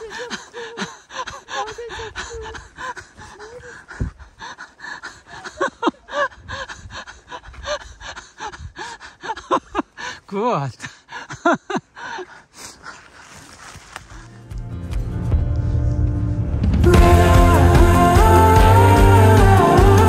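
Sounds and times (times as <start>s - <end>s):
woman exclaiming and laughing: 1.5s - 2.7s.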